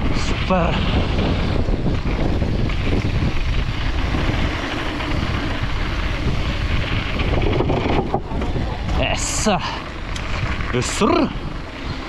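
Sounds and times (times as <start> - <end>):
bike rattling over ground: 0.0 - 12.0
low rumble of bike tyres: 0.0 - 12.0
wind rushing over microphone: 0.0 - 12.0.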